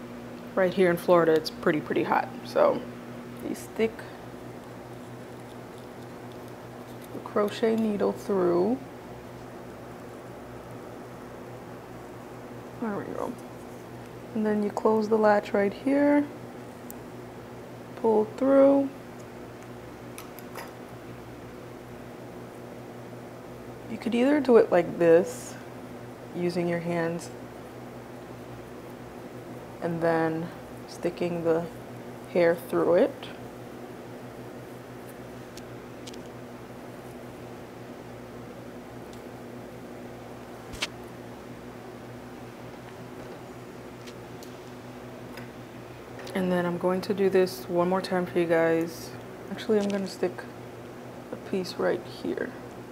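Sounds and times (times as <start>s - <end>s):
electric fan humming: 0.0s - 52.9s.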